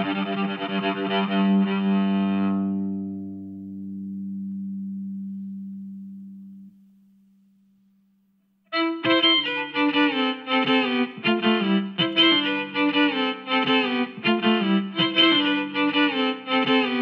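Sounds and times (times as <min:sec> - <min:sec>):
bowed electric cello: 0:00.0 - 0:06.7, 0:08.8 - 0:17.0.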